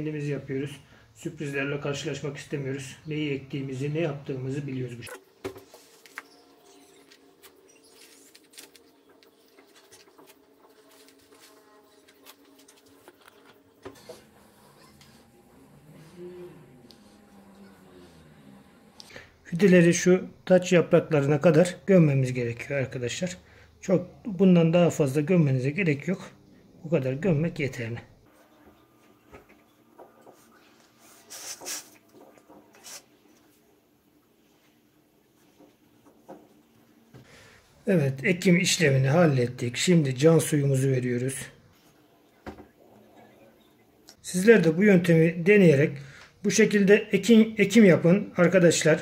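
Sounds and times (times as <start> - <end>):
low steady hum: 0.0 - 31.3
hands rustling potting soil: 5.6 - 13.6
soft brushing: 5.6 - 15.4, 30.3 - 32.0.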